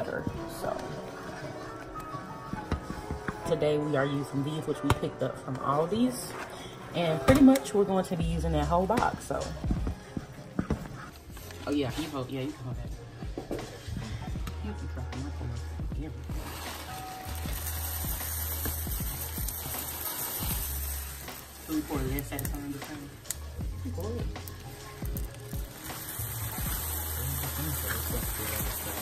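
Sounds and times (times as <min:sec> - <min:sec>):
background music with deep bass: 0:00.0 - 0:29.0
cereal stirred with wooden spoon: 0:16.3 - 0:23.2
light sizzle in pan: 0:16.4 - 0:29.0.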